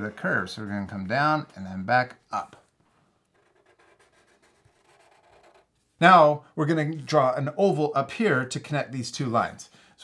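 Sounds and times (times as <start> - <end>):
markers drawing on paper: 3.3 - 5.7.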